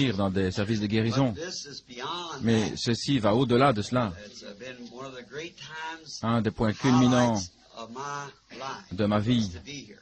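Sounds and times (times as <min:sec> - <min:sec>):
faint man's voice: 0:00.0 - 0:10.0.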